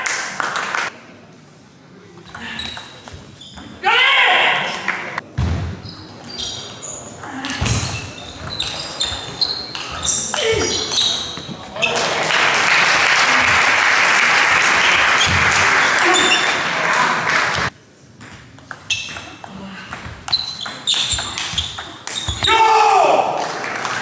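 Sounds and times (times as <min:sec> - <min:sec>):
person shouting: 0:22.4 - 0:23.3.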